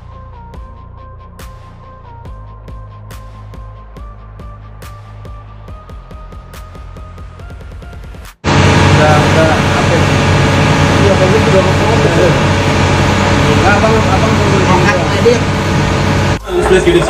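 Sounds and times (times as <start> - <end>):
steady low hum: 8.4 - 17.0.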